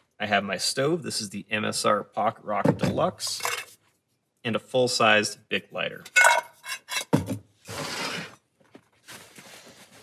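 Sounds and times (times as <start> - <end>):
metal pot clinking and ringing: 6.1 - 7.1
soft rustle: 8.9 - 10.0.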